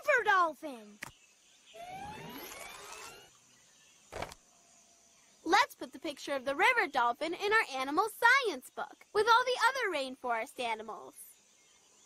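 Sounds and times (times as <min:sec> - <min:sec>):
printer whirring with rising tones: 0:01.8 - 0:03.3.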